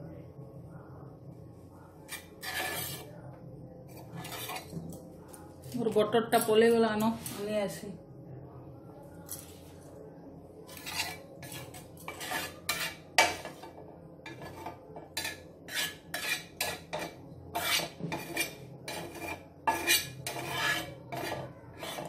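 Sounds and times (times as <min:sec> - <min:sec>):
low steady hum: 0:00.0 - 0:22.0
spatula scraping frying pan: 0:02.1 - 0:03.1, 0:03.9 - 0:04.8, 0:10.7 - 0:22.0.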